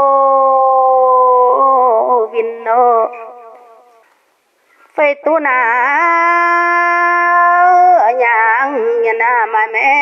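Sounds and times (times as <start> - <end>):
person singing with echo: 0.0 - 4.0, 5.0 - 10.0.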